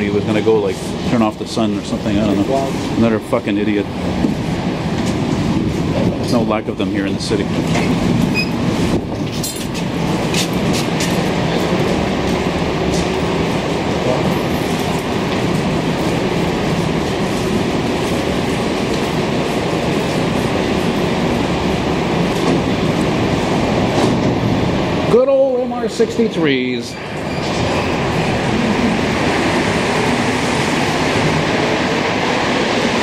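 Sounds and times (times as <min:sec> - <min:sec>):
subway train rumble and hiss: 0:00.0 - 0:33.0.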